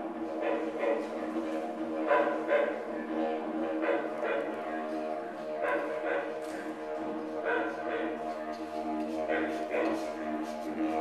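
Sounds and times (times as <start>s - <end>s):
didgeridoo drone: 0.0s - 11.0s.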